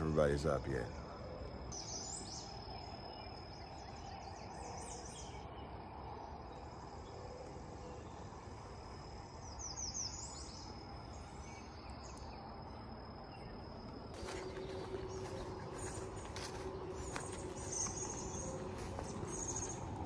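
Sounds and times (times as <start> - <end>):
high insect trill: 0.0 - 20.0
bird calling: 14.2 - 20.0.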